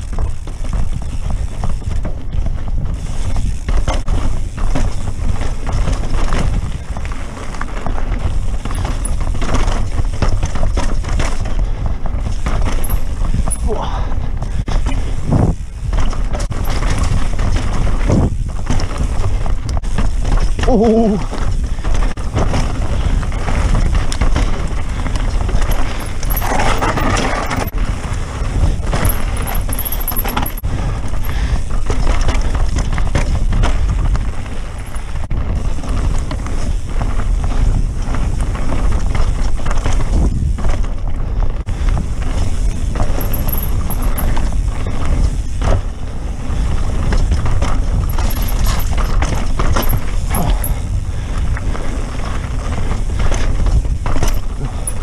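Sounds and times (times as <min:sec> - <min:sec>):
bike frame and chain rattling: 0:00.0 - 0:55.0
bike tyres on dirt and rock: 0:00.0 - 0:55.0
wind rush on microphone: 0:00.0 - 0:55.0.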